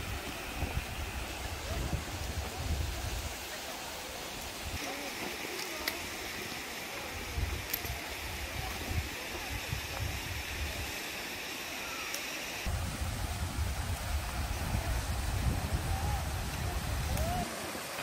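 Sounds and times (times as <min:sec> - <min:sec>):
wind buffeting microphone: 0:00.0 - 0:03.4, 0:12.7 - 0:17.5
waterfall rushing: 0:00.0 - 0:18.0.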